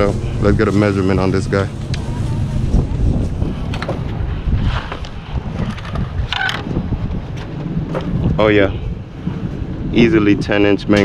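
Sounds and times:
faint voices: 0.0 - 5.2
wind buffeting microphone: 0.0 - 11.0.

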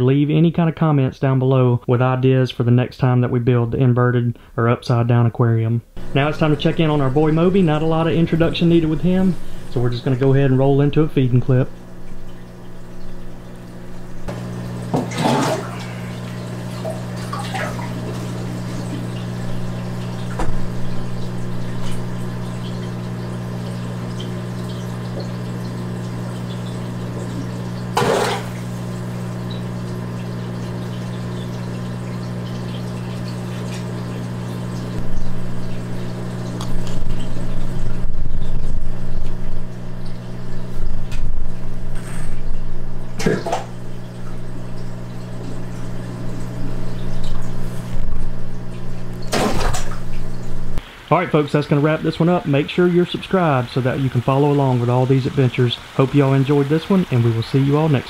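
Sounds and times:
aquarium equipment hum: 0.0 - 58.0
water moving: 6.0 - 51.2
sharp splashes at water surface: 27.4 - 29.4, 49.1 - 50.2.

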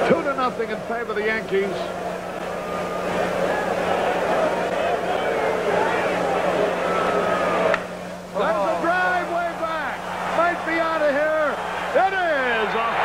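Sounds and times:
low electrical hum: 0.0 - 13.0
crowd murmur: 1.6 - 8.6.

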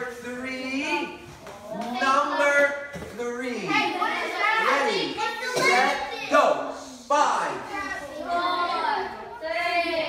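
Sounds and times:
children talking and calling out: 1.5 - 10.0.

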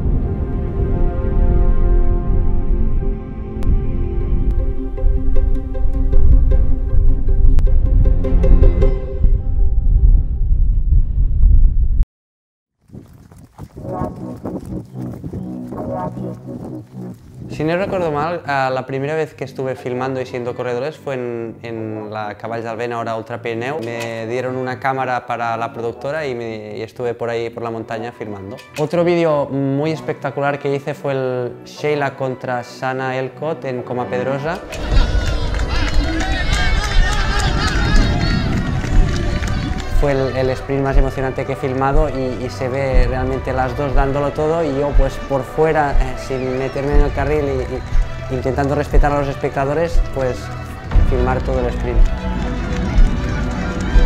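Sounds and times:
wind rumble on microphone: 0.0 - 12.0, 12.8 - 18.4, 34.7 - 41.1
running footfalls: 12.8 - 17.8, 46.0 - 54.0
wind buffeting microphone: 12.9 - 18.4, 34.7 - 41.1
spectators shouting and cheering: 34.6 - 42.0, 42.7 - 54.0.

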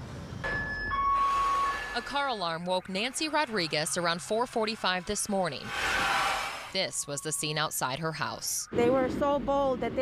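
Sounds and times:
car alarm electronic tone: 0.4 - 5.7, 6.7 - 9.4.

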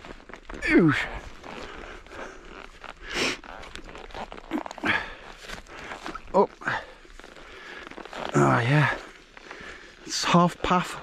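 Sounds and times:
plants swishing against clothing: 0.0 - 10.2
footsteps on boggy path: 0.0 - 11.0.

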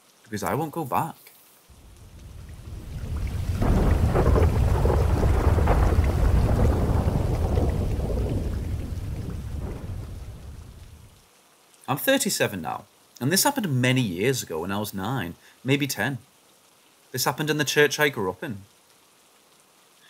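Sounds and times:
rain: 0.0 - 20.0
rolling thunder: 1.7 - 11.1.

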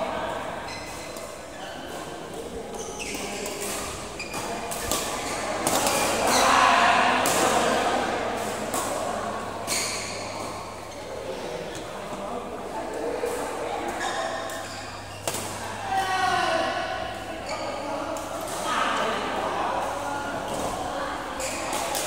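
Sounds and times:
murmur of players' voices: 0.0 - 22.0.

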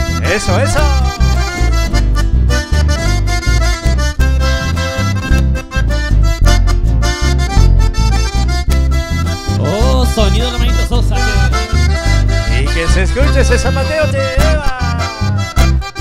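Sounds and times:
button accordion melody: 0.0 - 16.0
electric bass line: 0.0 - 16.0
strummed acoustic guitar: 0.0 - 16.0.

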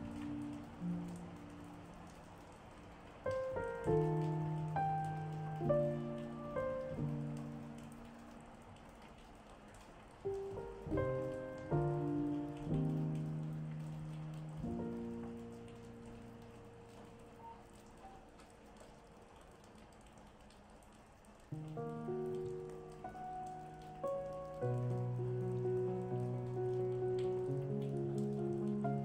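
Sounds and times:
calm solo piano music: 0.0 - 2.4, 3.1 - 8.8, 10.2 - 18.7, 21.6 - 29.0
recorded rain: 0.0 - 29.0.

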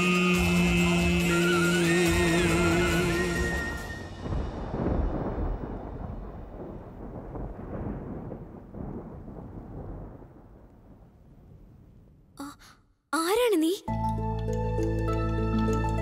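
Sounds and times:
low dramatic rumble: 4.1 - 11.7.

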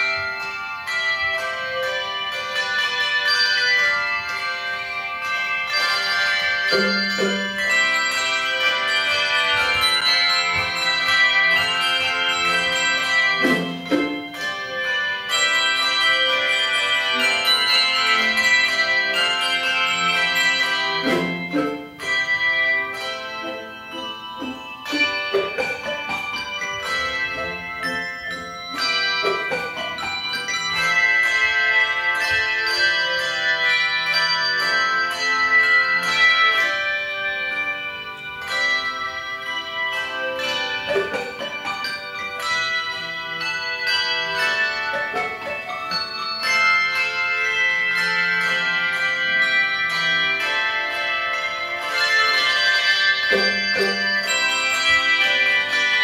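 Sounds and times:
handbell choir playing chords: 0.0 - 56.0.

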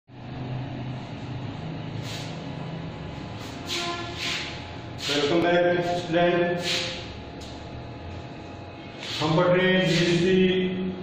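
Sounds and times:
low mechanical hum: 0.1 - 11.0.

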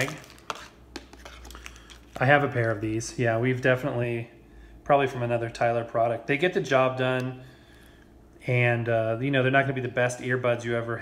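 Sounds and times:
faint plastic rustling: 0.0 - 3.0.

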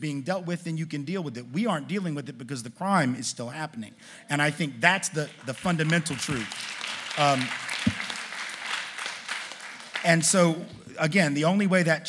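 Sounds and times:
audience applauding: 5.2 - 10.9.

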